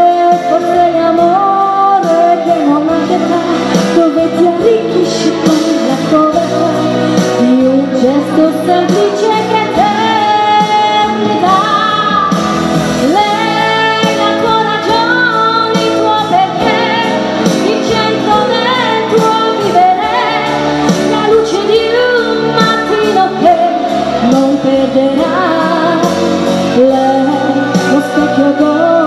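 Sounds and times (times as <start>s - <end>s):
pop music accompaniment: 0.0s - 29.0s
woman singing into microphone: 0.0s - 29.0s.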